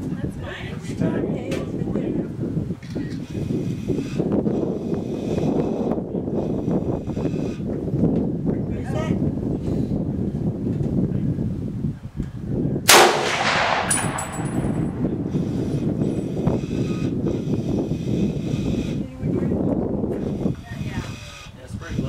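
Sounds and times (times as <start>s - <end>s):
gunshot with ringing tail: 12.9s - 15.1s.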